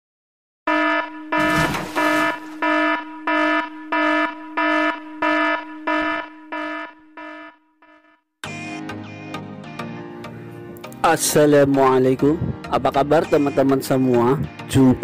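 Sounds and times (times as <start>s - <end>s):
buzzy electronic alarm beeps: 0.7s - 9.3s, 13.1s - 14.4s.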